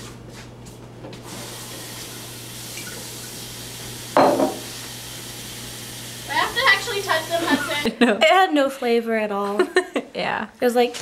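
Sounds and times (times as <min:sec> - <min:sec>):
tap running into sink: 0:04.2 - 0:05.0.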